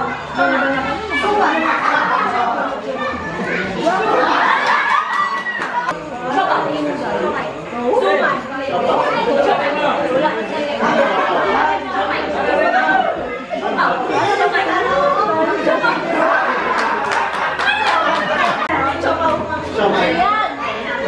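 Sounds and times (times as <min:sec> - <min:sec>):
group chatter: 0:00.0 - 0:21.0.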